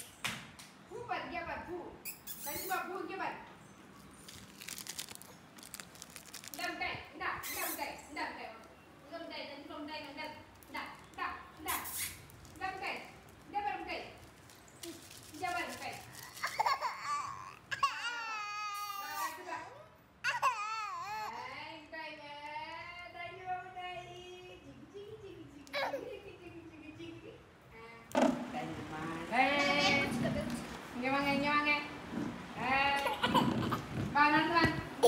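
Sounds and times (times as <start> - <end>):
baby girl crying: 16.2 - 19.5, 20.2 - 21.6.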